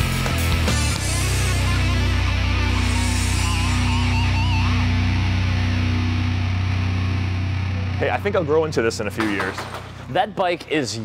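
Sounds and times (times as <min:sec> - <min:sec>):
heavy rock music: 0:00.0 - 0:09.4
distorted electric guitar chord: 0:00.1 - 0:08.8.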